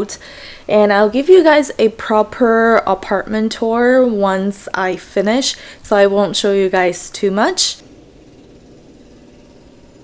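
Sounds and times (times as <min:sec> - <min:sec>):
distant city traffic hum: 0:00.0 - 0:10.0.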